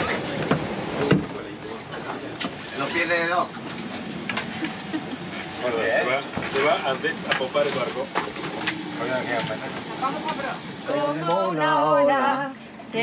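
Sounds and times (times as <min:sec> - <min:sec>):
indistinct voices: 0:00.0 - 0:13.0.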